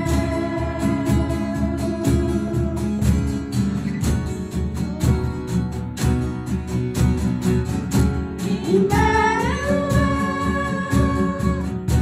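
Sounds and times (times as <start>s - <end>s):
steady drum beat: 0.0s - 12.0s
worship band playing: 0.0s - 12.0s.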